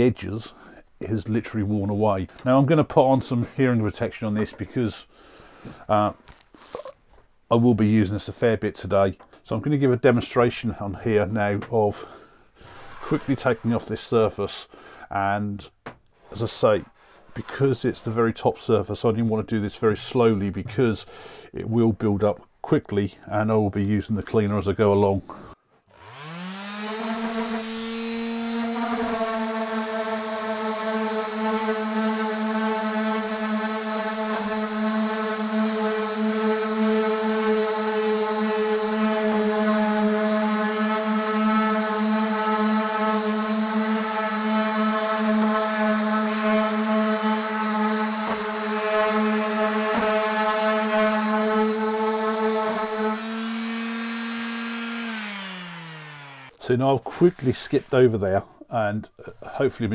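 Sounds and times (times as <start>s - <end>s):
sander rasping on wood: 12.6s - 13.9s, 25.9s - 58.0s
orbital sander motor hum: 25.9s - 56.6s.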